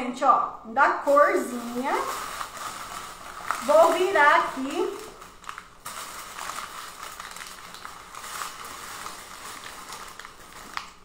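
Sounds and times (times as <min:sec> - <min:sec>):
cellophane and paper crinkling: 0:01.0 - 0:11.0.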